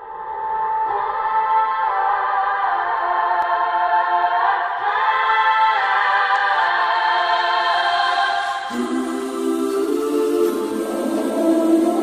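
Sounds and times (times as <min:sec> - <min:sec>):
choir-like wordless singing: 0:00.0 - 0:12.0.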